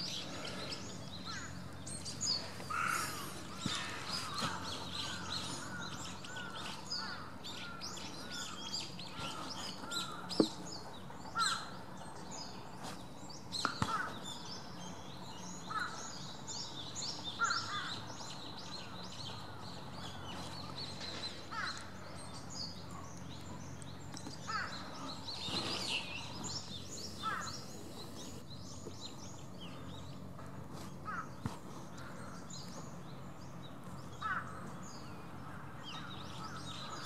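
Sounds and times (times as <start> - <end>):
birds twittering: 0.0 - 37.0
low background hum: 0.0 - 37.0.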